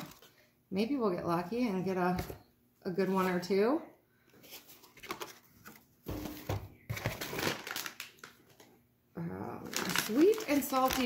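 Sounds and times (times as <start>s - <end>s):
plastic snack bag crinkling: 7.0s - 8.7s, 9.5s - 11.0s.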